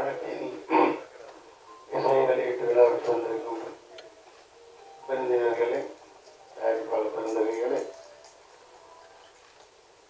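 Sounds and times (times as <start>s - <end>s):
man speaking into a microphone: 6.6s - 8.0s.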